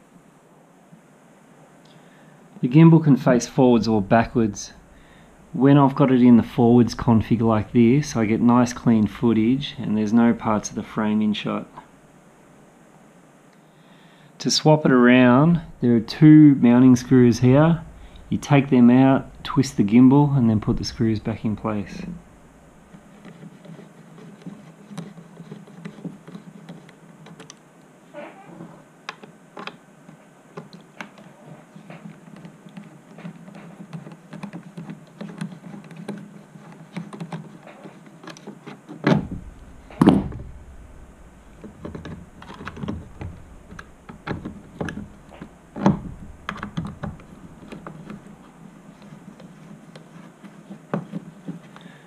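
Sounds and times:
light clicks and scrapes: 22.9s - 27.6s, 28.7s - 52.0s
plastic mount knocking: 38.2s - 40.8s, 41.5s - 48.3s.

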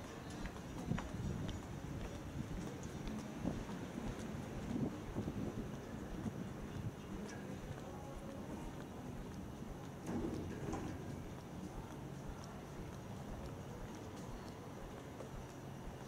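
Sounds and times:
footsteps on wooden boardwalk: 0.0s - 16.0s
low background hiss: 0.0s - 16.0s.

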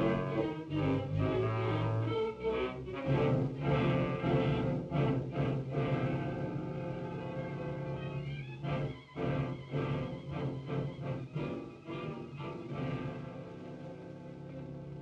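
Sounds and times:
orchestral suspense music: 0.0s - 15.0s.

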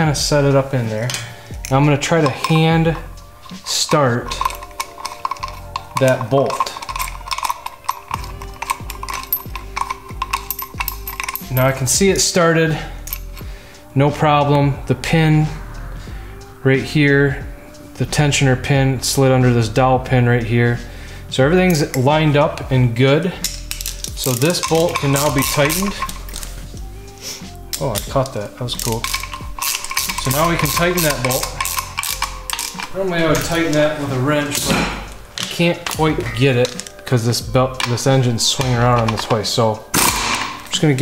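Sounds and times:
background music with steady beat: 0.0s - 41.0s
metal hand tools clinking: 0.8s - 13.5s, 21.6s - 26.9s, 27.5s - 41.0s
socket wrench clicking on bolt: 3.4s - 11.6s, 23.4s - 26.6s, 27.7s - 33.0s.

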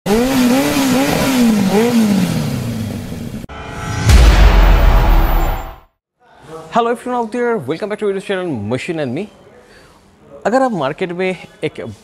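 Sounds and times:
engine revving: 0.1s - 3.5s.

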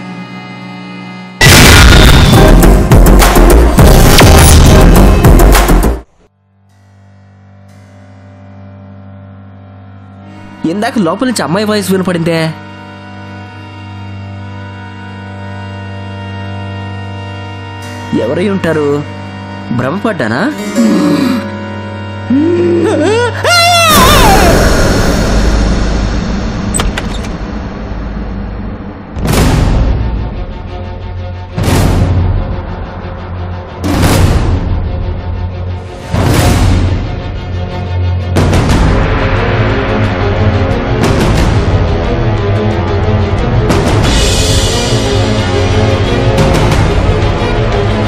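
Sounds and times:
low synth drone: 0.0s - 5.5s, 6.6s - 10.6s, 20.5s - 23.4s, 24.2s - 48.0s.

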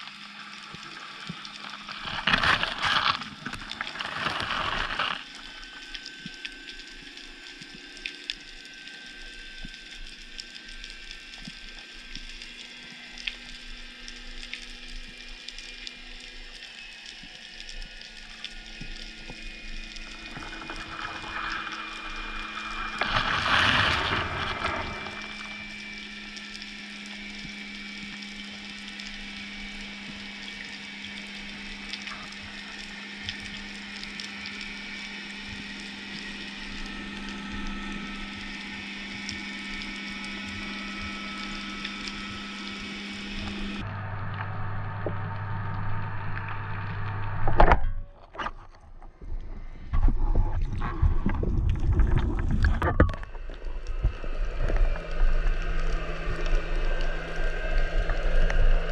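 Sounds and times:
steady low hum: 0.1s - 58.9s
underwater crackling: 0.4s - 8.6s, 17.0s - 34.4s, 50.0s - 58.9s
rushing whoosh of water: 20.1s - 25.9s.

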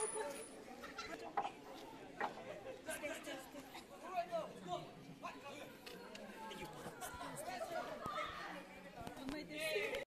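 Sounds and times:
faint chatter of voices: 0.0s - 10.0s.

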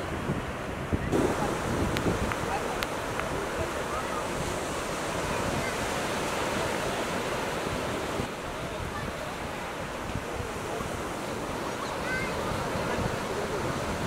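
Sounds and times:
sea surf breaking on sand: 0.0s - 14.0s.

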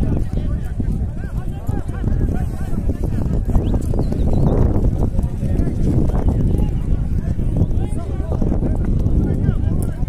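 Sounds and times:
rumble of hooves on dirt: 0.0s - 10.0s.

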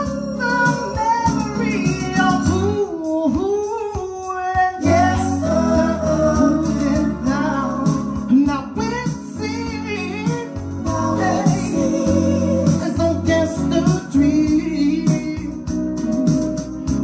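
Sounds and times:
instrumental backing music: 0.0s - 17.0s
man singing soul ballad: 0.0s - 17.0s.

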